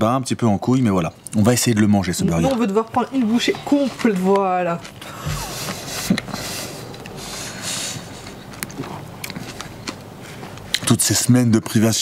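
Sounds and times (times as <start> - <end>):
man biting and chewing: 4.8 - 10.9.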